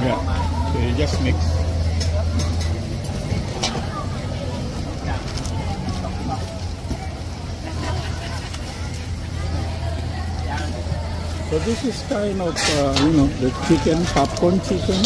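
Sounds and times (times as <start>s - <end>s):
indistinct crowd chatter: 0.0s - 15.0s.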